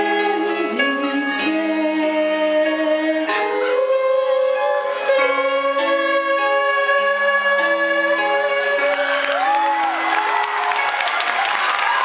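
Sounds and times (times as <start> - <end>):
two women singing: 0.0 - 10.0
musical accompaniment: 0.0 - 12.0.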